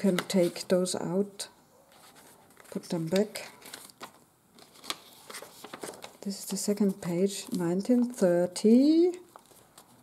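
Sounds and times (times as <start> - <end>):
paper rustling: 1.9 - 8.2, 9.3 - 10.0.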